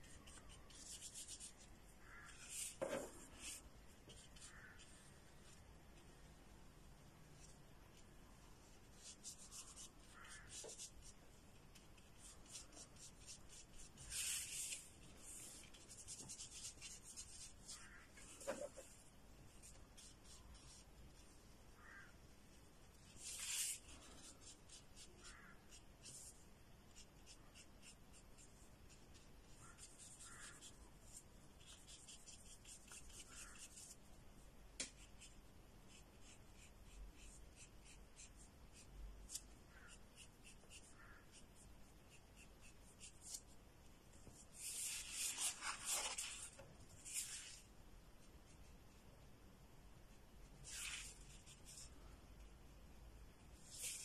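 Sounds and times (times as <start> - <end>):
paintbrush strokes on paper: 0.0 - 6.2, 7.3 - 22.1, 22.9 - 34.1, 34.9 - 47.7, 50.5 - 52.5, 53.4 - 54.0.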